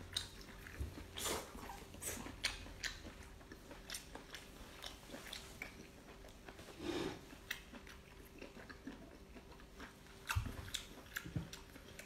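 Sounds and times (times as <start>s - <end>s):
person chewing wet clicks: 0.0s - 12.0s.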